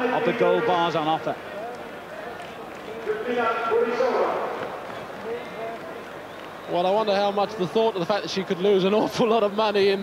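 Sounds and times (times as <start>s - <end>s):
stadium background noise: 0.0s - 10.0s.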